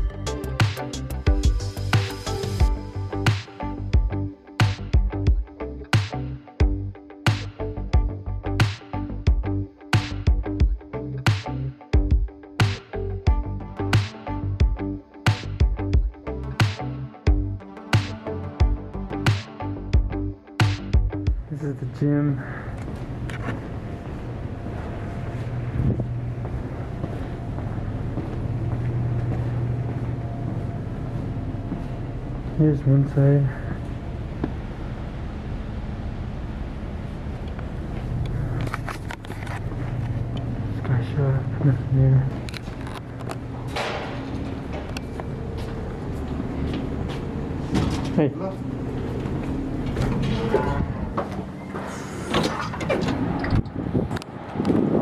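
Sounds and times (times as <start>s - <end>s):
steady low hum: 19.8s - 55.0s
rumbling handling noise: 33.7s - 41.7s, 42.3s - 54.9s
door opening: 42.4s - 45.7s, 47.6s - 48.3s, 49.0s - 54.2s.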